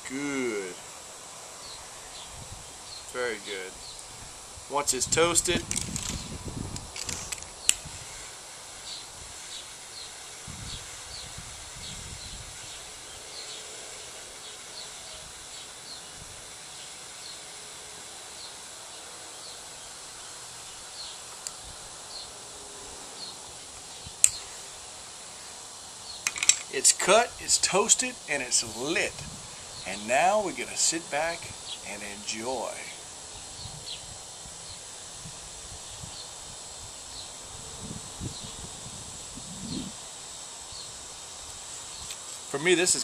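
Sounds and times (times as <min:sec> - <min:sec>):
faint lighter hiss: 0:01.6 - 0:04.3, 0:05.5 - 0:16.2, 0:18.4 - 0:22.4, 0:23.2 - 0:27.0, 0:39.2 - 0:42.6
torch lighter click: 0:24.2 - 0:24.4.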